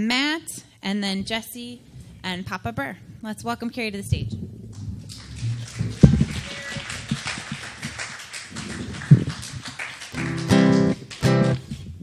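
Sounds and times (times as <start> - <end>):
acoustic guitar picked lightly: 10.2 - 12.0.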